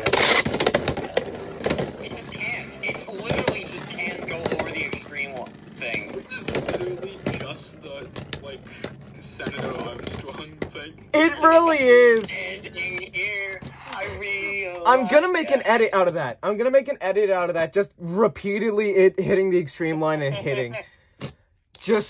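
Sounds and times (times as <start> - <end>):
spinning tops whirring: 0.0 - 15.7.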